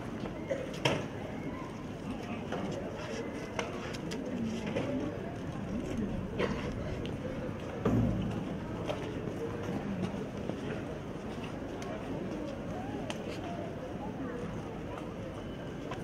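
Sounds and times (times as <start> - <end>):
murmur of outdoor crowd: 0.0 - 16.0.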